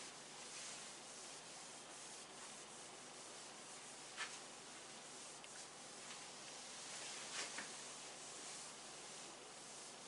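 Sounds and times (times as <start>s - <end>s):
cloth rubbing on whiteboard: 0.0s - 10.0s.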